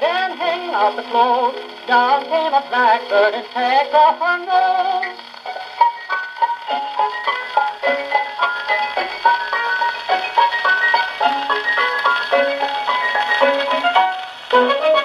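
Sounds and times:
small orchestra on old record: 0.0 - 15.0.

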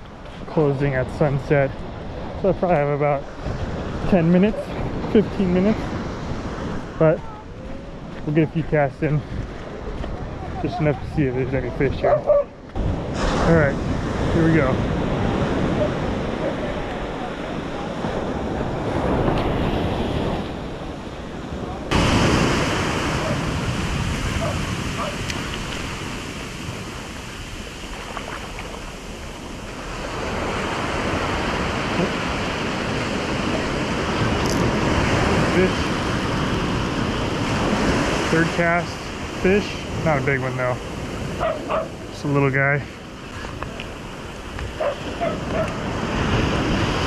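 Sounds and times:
ocean surf breaking: 0.0 - 47.0
wind on microphone: 3.2 - 42.1, 43.0 - 47.0.

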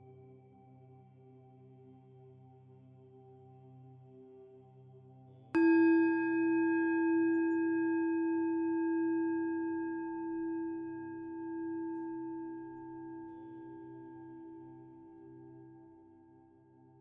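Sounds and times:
singing bowl ringing: 5.6 - 15.8.

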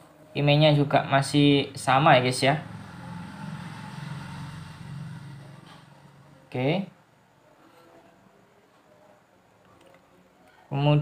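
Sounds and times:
low engine drone: 1.8 - 6.5.

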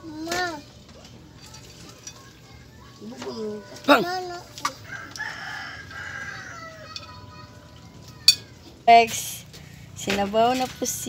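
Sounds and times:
rooster crowing: 4.7 - 7.4.

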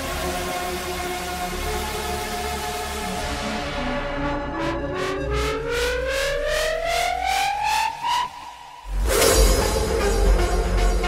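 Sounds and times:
rising synth line: 3.4 - 10.0
crash cymbal: 8.1 - 11.0.

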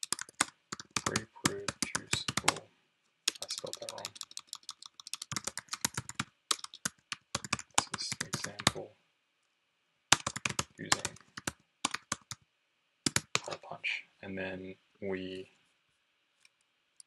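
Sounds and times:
typing on computer keyboard: 0.0 - 2.6, 3.3 - 8.8, 10.1 - 12.4, 13.1 - 13.5.

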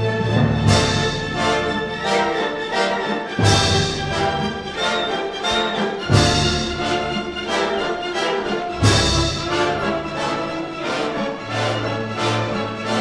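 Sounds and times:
heavy accented orchestral strikes: 0.0 - 13.0
orchestra playing dance music: 0.0 - 13.0.

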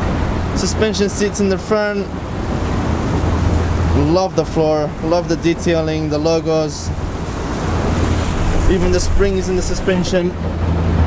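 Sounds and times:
rushing water: 0.0 - 11.0
wind buffeting microphone: 0.0 - 11.0.

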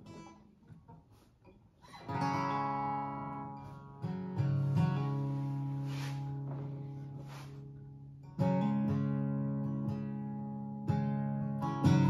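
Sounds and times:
acoustic guitar chords ringing: 2.0 - 12.0
faint touches on strings: 4.8 - 7.7.

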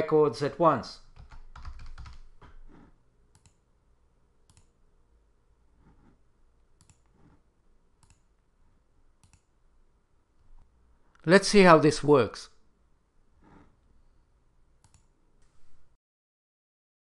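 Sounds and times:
keyboard keystrokes: 1.2 - 2.6
mouse clicks: 3.3 - 3.6, 4.4 - 4.8, 6.8 - 7.2, 8.0 - 8.3, 9.2 - 9.5, 14.8 - 15.1.

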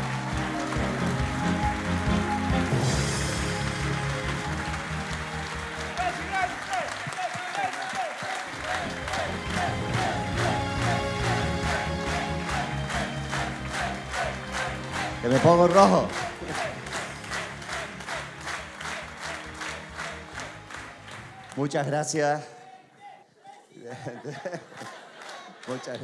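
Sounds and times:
music with a steady beat: 0.0 - 5.9
audience applauding and cheering: 0.0 - 22.9, 23.5 - 26.0.

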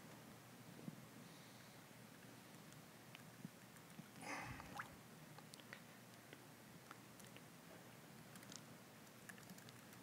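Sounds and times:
laptop keystrokes: 9.2 - 10.0.

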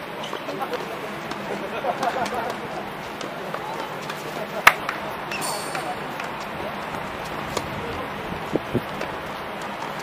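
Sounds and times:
distant voices chatting: 0.0 - 10.0.

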